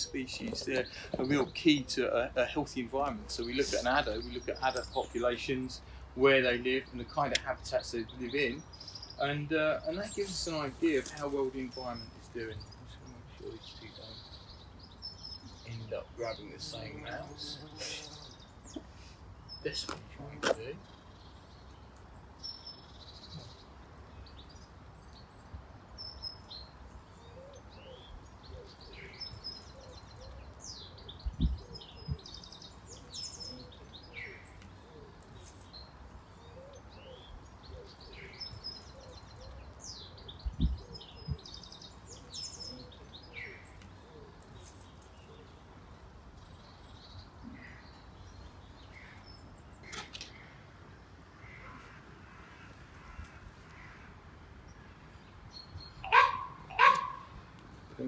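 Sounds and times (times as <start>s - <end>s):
birds chirping and whistling: 0.0s - 25.3s, 26.0s - 50.6s, 52.6s - 57.5s.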